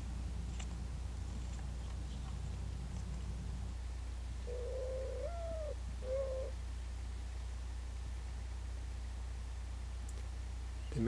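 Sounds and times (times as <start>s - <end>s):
dove cooing: 4.4s - 6.6s.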